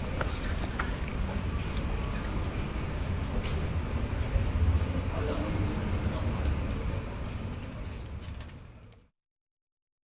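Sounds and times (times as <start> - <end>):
low rumbling noise: 0.0 - 9.0.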